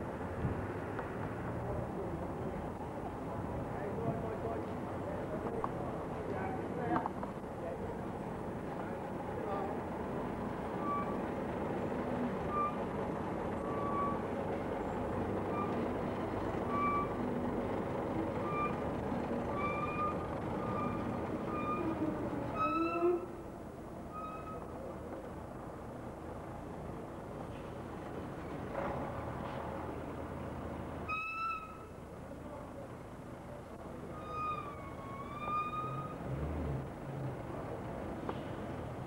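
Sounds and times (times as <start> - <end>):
truck diesel engine running: 8.0 - 22.6.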